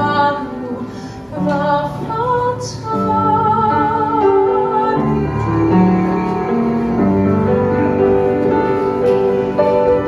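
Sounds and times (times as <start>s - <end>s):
piano accompaniment: 0.0s - 10.0s
soprano singing: 0.0s - 10.0s.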